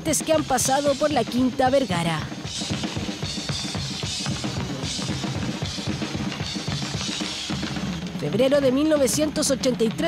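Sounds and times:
fast drum kit solo: 0.0 - 10.0.

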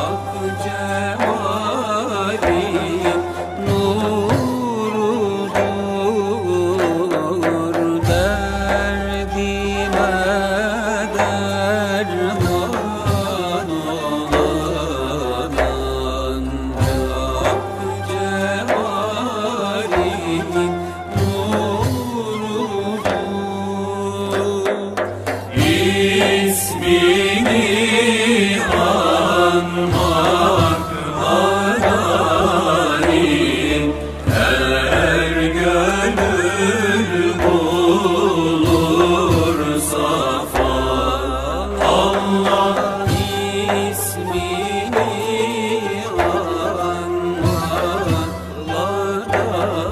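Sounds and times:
devotional hymn melody: 0.0 - 49.9
low drone: 0.0 - 49.9
percussion stroke: 19.7 - 49.6
low steady drone: 25.4 - 49.6.

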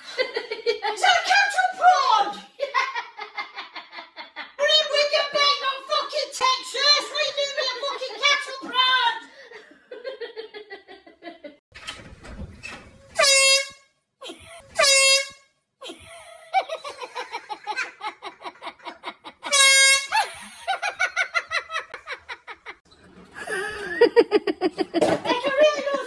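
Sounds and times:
people laughing: 2.6 - 4.6, 9.3 - 11.6, 15.8 - 26.0
air horn blasts: 13.1 - 13.9, 14.7 - 15.5, 19.5 - 20.3.

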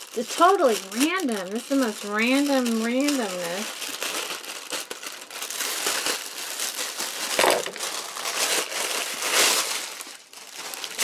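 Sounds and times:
plastic mailer crinkling: 0.0 - 11.0.

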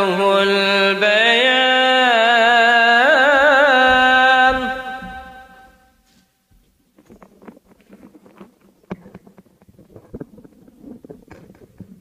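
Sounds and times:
microphone handling noise: 3.3 - 12.0.

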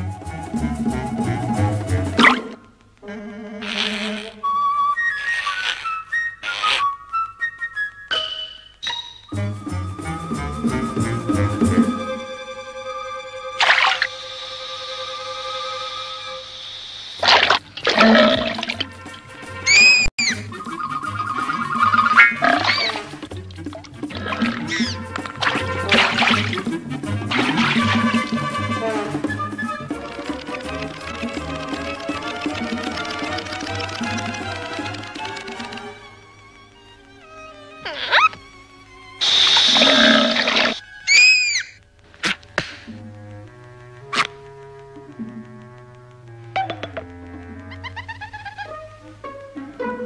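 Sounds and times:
shrill whistle-like tone: 0.0 - 2.6, 4.4 - 17.6, 19.7 - 23.1, 27.4 - 32.2, 39.2 - 41.8
cartoon squeal: 2.2 - 7.2, 19.7 - 23.2, 24.1 - 25.0, 37.5 - 38.5, 39.2 - 42.4, 47.6 - 48.9
cartoon hiss: 3.6 - 4.4, 5.2 - 7.0, 13.5 - 18.8, 19.7 - 20.4, 37.8 - 43.0.

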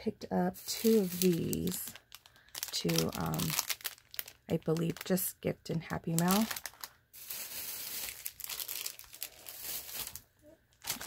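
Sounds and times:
plastic packaging crinkling: 0.6 - 11.0.

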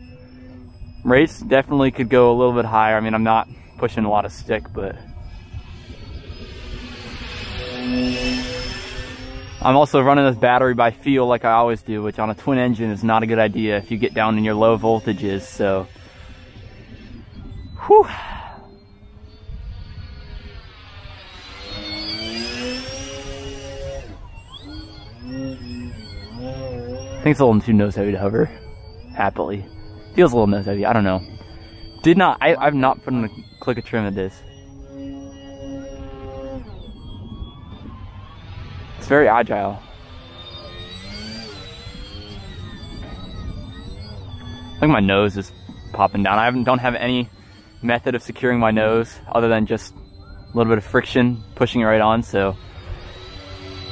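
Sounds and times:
model plane motors whining: 0.0 - 53.9
wind rumbling on microphone: 0.0 - 53.9.

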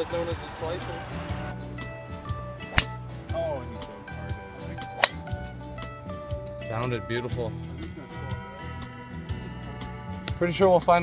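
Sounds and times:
background music: 0.0 - 11.0
golf club striking ball: 2.6 - 3.2, 5.0 - 5.6.

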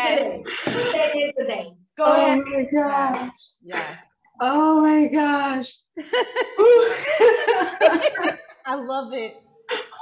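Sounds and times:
women laughing: 6.0 - 8.6.

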